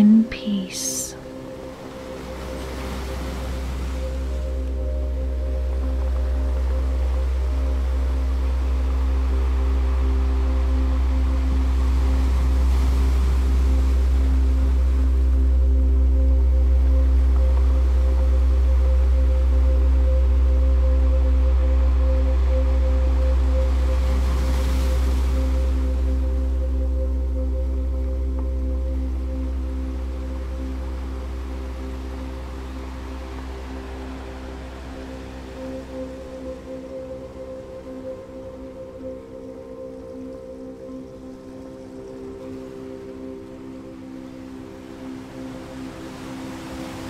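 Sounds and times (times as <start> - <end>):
ambient drone music: 0.0 - 47.0
soft surf-like rushing noise: 41.1 - 47.0.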